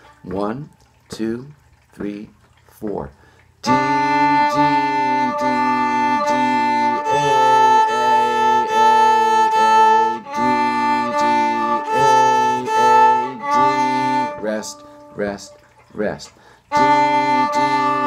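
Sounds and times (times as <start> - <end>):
viola bowed short notes: 3.6 - 15.6, 16.7 - 18.0.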